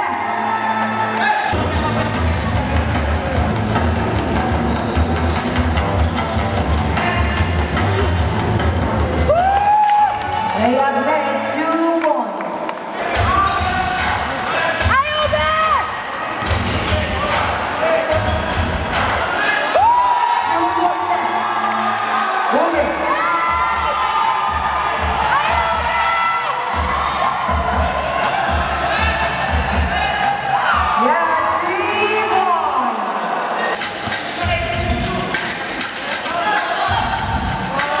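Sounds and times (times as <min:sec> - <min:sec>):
music with heavy beat: 0:01.5 - 0:09.6, 0:13.1 - 0:19.3, 0:23.1 - 0:31.0, 0:33.8 - 0:38.0
sneakers squeaking: 0:01.6 - 0:07.5, 0:16.0 - 0:19.2, 0:26.8 - 0:29.9
ball bouncing on court: 0:16.4 - 0:17.0.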